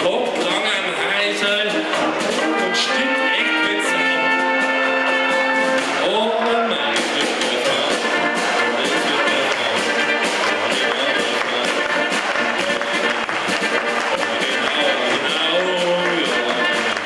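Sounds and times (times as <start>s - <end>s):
brass band playing chords: 0.0s - 17.0s
drums and cymbals: 0.0s - 17.0s.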